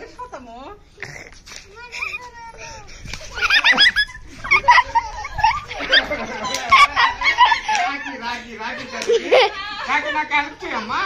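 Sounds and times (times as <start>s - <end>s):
excited voices: 1.8s - 11.0s.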